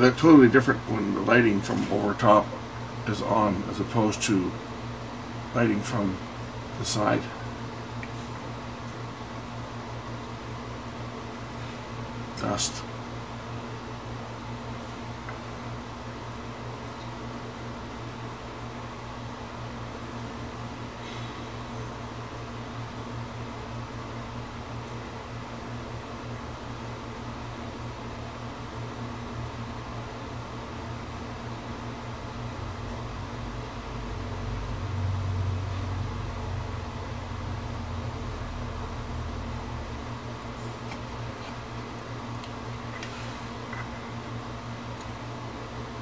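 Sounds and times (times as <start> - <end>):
fan-like hiss: 0.0 - 46.0
low electrical hum: 0.0 - 46.0.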